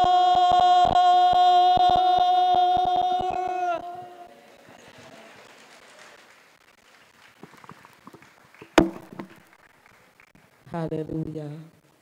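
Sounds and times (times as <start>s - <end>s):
sharp knock: 8.7s - 9.4s.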